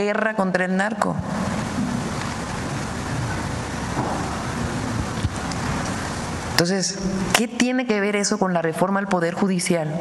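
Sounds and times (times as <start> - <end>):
steady rushing hiss: 1.2 - 7.3.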